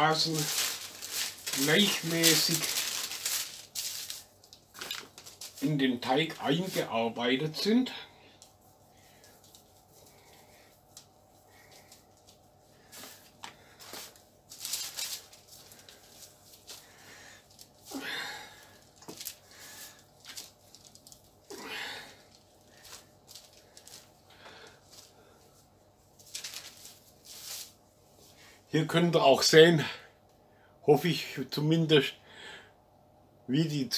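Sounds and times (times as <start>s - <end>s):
dough being kneaded by hand: 0.0s - 27.8s.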